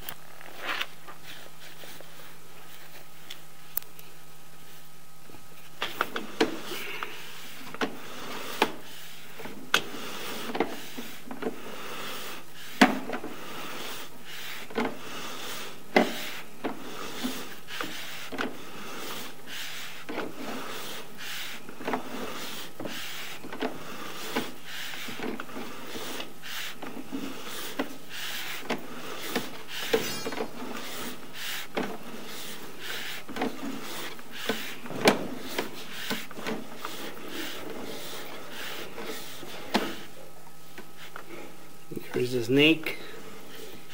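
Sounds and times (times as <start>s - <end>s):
faint steady hum: 0.0s - 43.9s
cable knocking and rubbing: 5.8s - 40.1s.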